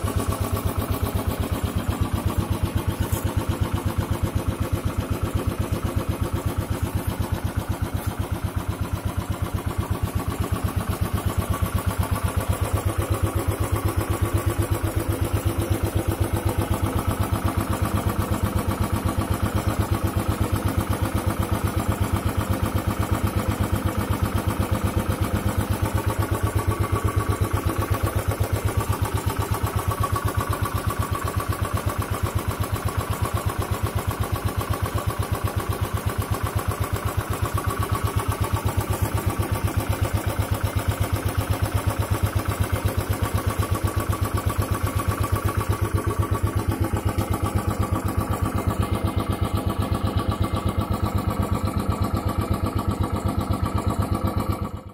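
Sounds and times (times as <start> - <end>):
motorcycle engine idling: 0.0 - 54.9.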